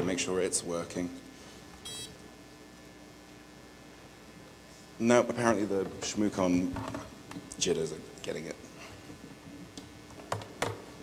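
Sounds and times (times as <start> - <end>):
card reader beep: 1.8 - 2.2.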